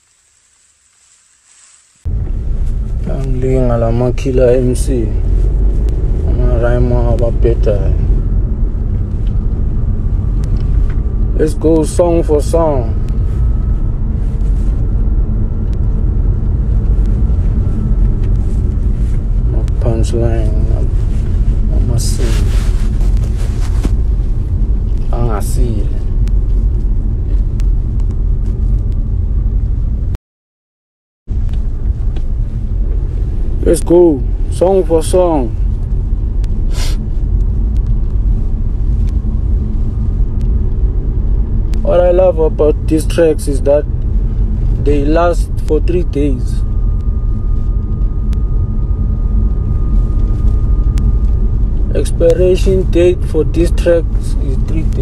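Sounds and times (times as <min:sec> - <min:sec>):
low rumble: 0:00.0 - 0:30.2, 0:31.3 - 0:55.0
man's voice: 0:03.1 - 0:05.2, 0:06.2 - 0:08.1, 0:11.4 - 0:13.0, 0:21.7 - 0:22.5, 0:33.6 - 0:35.5, 0:41.8 - 0:43.8, 0:44.8 - 0:46.6, 0:51.9 - 0:55.0
faint steady tone: 0:31.4 - 0:55.0
breathy hiss: 0:36.6 - 0:37.1.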